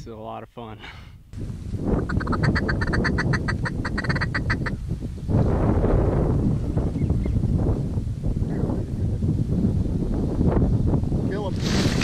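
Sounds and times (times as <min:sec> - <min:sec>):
wind on microphone: 0:01.3 - 0:12.0.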